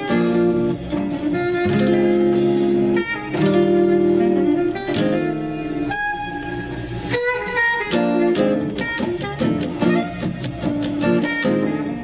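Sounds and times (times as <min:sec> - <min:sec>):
guitar chords ringing: 0:00.0 - 0:12.0.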